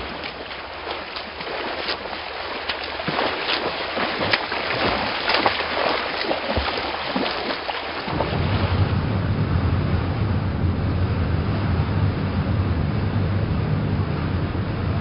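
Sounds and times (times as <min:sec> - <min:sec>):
wind and sea hiss: 0:00.0 - 0:12.5
ship engines rumbling: 0:00.0 - 0:15.0.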